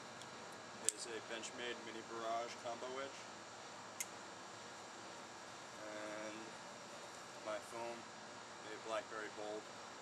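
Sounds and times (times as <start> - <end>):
low outdoor hiss: 0.0 - 10.0.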